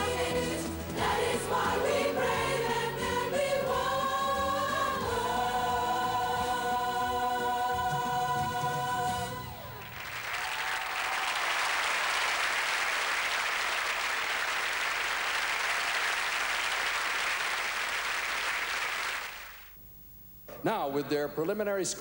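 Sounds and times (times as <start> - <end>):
audience applauding: 9.5 - 19.7.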